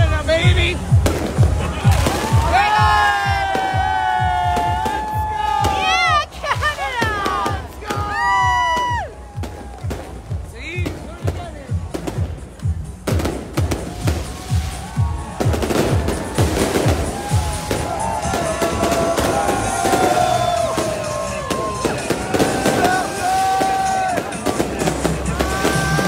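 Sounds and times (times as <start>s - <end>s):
fireworks bangs and crackles: 0.0s - 26.0s
music with thumping beat: 0.0s - 26.0s
crowd whooping: 0.8s - 10.5s, 13.7s - 26.0s.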